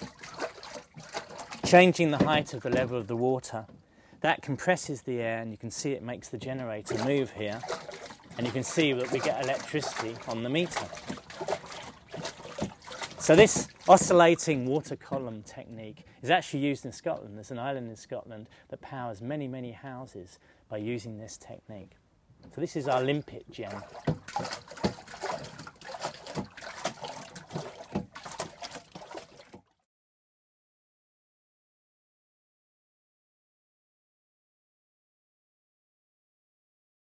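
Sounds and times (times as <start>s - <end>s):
soft water splashes: 0.0s - 3.8s, 5.6s - 16.3s, 22.5s - 29.8s
water sloshing and trickling: 0.0s - 19.1s, 21.0s - 29.9s.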